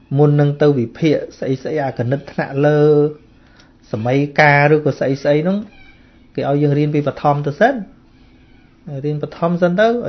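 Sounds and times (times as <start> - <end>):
man speaking: 0.0 - 3.2, 3.8 - 5.8, 6.4 - 8.0, 8.8 - 10.0.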